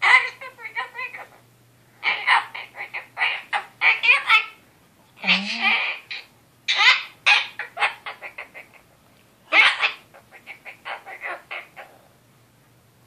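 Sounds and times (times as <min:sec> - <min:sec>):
cockatoo chattering: 0:00.0 - 0:01.4, 0:02.0 - 0:04.6, 0:05.2 - 0:08.9, 0:09.5 - 0:12.0.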